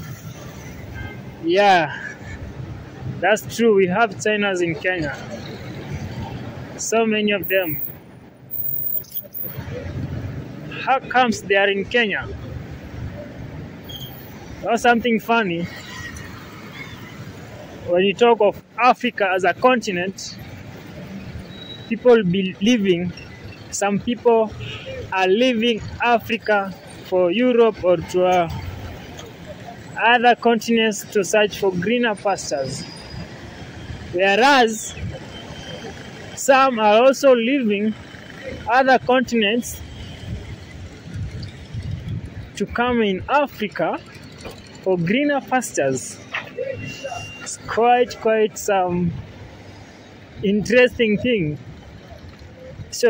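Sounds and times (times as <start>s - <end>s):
passing cars and motorbikes: 0.0s - 53.0s
street background rumble: 0.0s - 53.0s.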